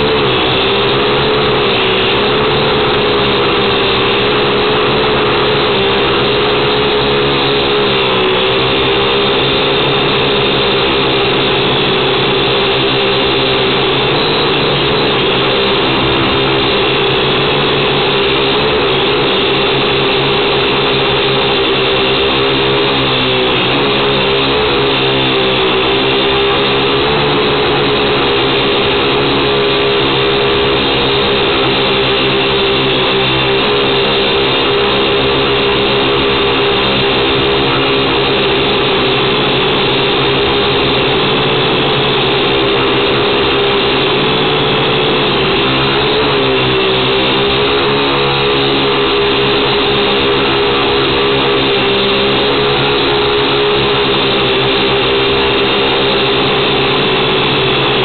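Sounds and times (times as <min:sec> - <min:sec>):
quadcopter motors buzzing: 0:00.0 - 0:58.0.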